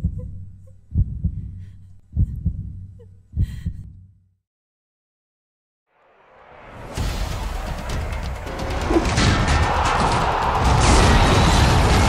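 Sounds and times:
heartbeat thumps: 0.0 - 4.2.

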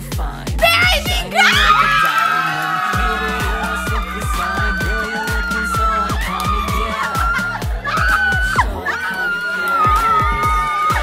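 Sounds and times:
pop music with steady beat: 0.0 - 11.0
people screaming excitedly: 0.6 - 11.0.

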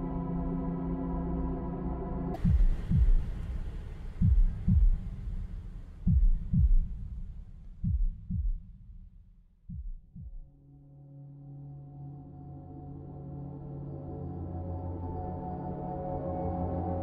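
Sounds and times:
heartbeat thumps: 2.4 - 10.5.

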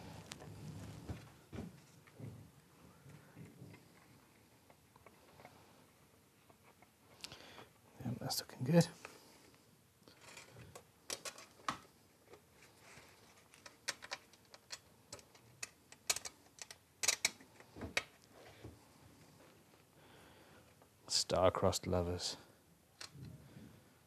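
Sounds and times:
small screws clicking: 13.6 - 17.7.

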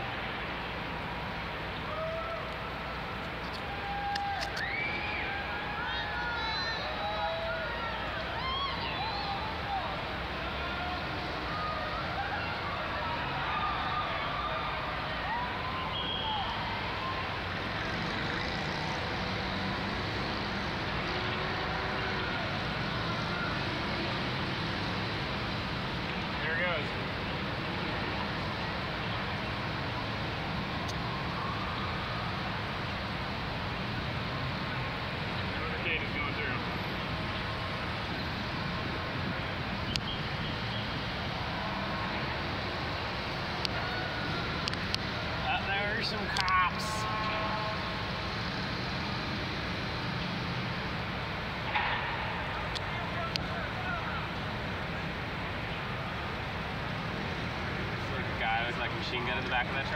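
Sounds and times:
indistinct crowd voices: 0.0 - 59.9
street traffic: 0.0 - 59.9.

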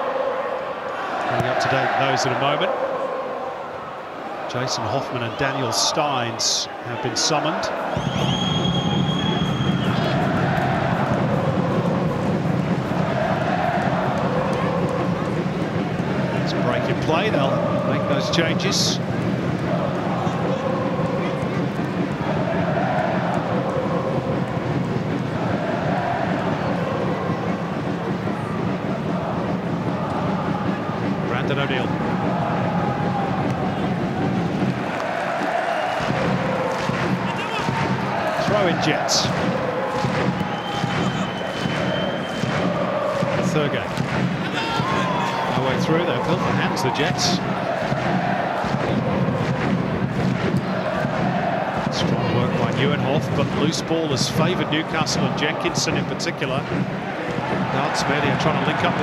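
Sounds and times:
fans chanting: 0.0 - 59.0
stadium crowd voices: 0.0 - 59.0.

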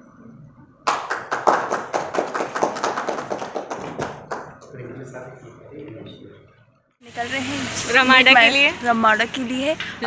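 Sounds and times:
people applauding: 0.8 - 4.7.

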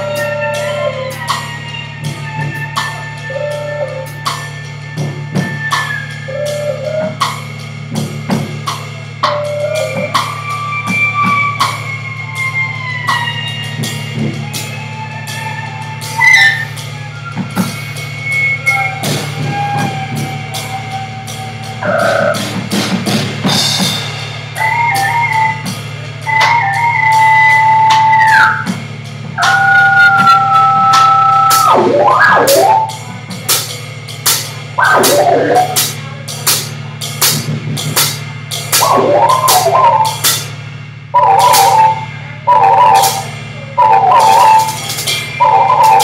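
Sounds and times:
drum and cymbal hits: 0.0 - 46.0
electric cello tones: 21.8 - 22.6, 29.4 - 33.0, 34.8 - 35.8, 38.8 - 40.3, 41.1 - 46.0
low synthesizer drone: 29.4 - 33.0, 34.8 - 35.8, 38.8 - 40.2.

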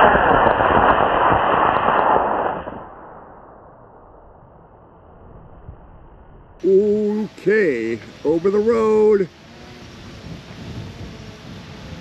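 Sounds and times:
rocket motor rushing hiss: 6.6 - 12.0.

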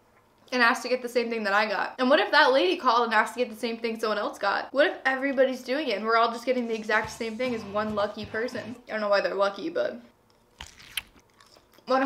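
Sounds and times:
person chewing salad: 10.3 - 11.9
crisp crunches: 10.5 - 11.8.

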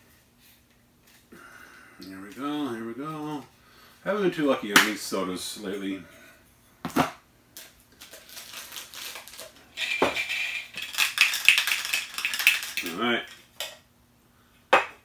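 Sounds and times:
plastic wrapper crinkling: 7.6 - 13.4.

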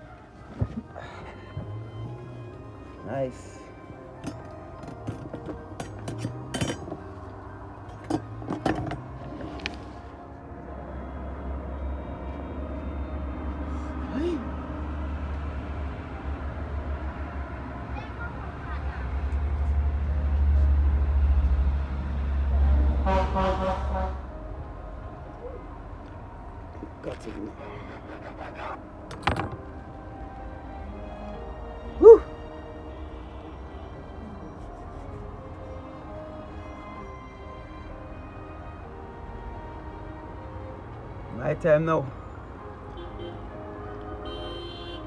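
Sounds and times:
motor vehicle rumble: 0.0 - 45.0.

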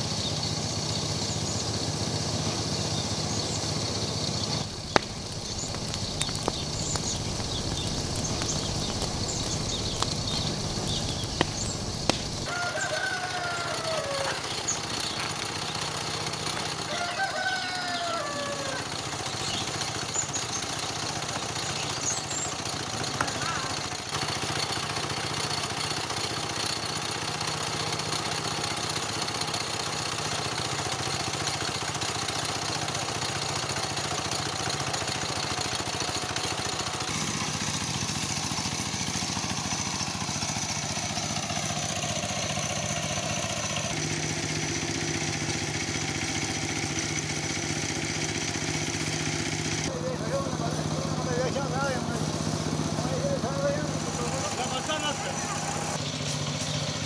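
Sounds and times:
small engine running: 0.0 - 57.0.

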